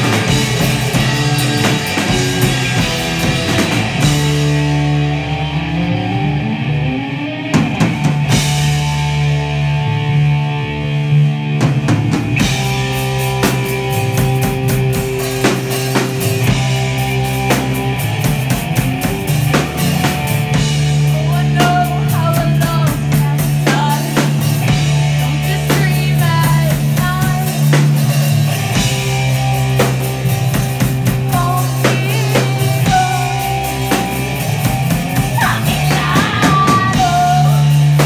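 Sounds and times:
drum kit: 0.0 - 38.0
rock band playing: 0.0 - 38.0.

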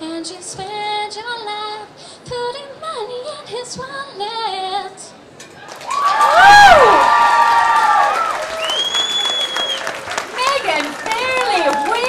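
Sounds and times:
audience applauding: 5.6 - 12.0
long whistle: 8.5 - 9.9.

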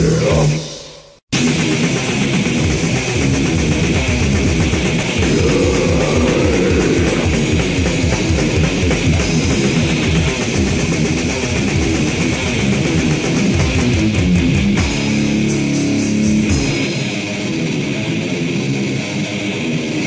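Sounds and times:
death metal band playing: 0.0 - 20.0.

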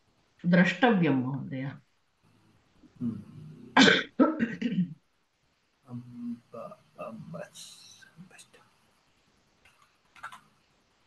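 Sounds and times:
soft hiss: 0.0 - 11.0
person speaking briefly: 5.9 - 7.8
faint clicks: 9.6 - 10.5.

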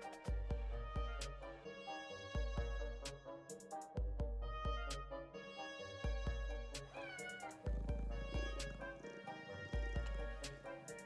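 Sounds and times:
background music with low drums: 0.0 - 11.0
cat meowing: 6.9 - 8.9.

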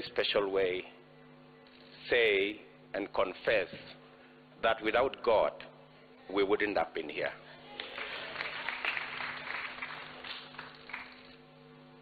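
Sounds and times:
steady low hum: 0.0 - 12.0
audience applause and cheering: 7.8 - 11.3.

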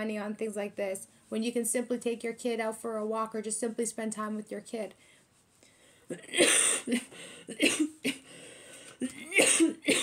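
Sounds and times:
woman coughing: 6.1 - 8.3, 9.0 - 10.0.

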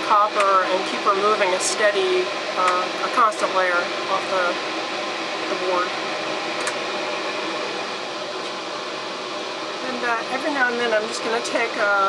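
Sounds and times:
exhaust fan running: 0.0 - 12.0.

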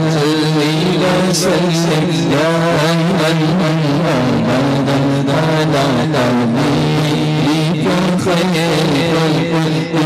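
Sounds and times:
man singing through a loudspeaker: 0.0 - 10.0
steady low drone: 0.0 - 10.0.

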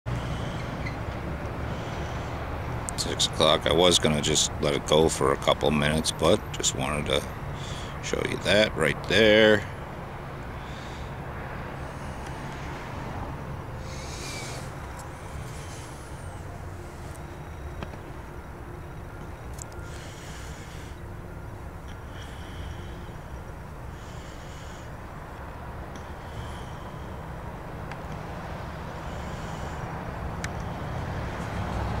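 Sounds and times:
low outdoor rumble: 0.1 - 32.0.

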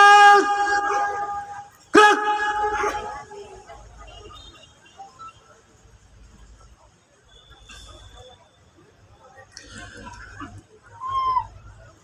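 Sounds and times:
man shouting a command: 0.0 - 3.2
faint background murmur: 0.0 - 12.0.

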